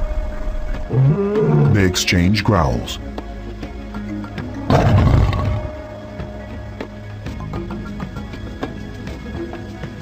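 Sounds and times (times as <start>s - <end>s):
lion growling: 0.9s - 1.8s, 4.7s - 5.7s.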